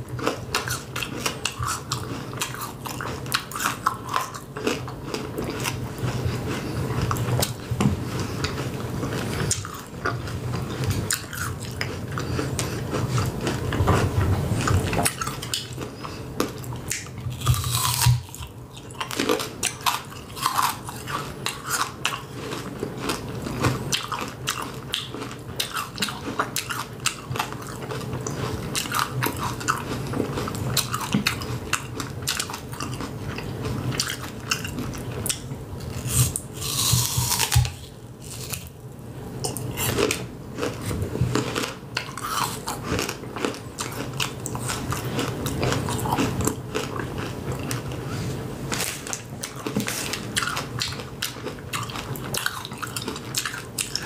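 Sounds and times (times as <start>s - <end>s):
crunching candy apple: 14.6s - 38.8s, 39.4s - 48.0s.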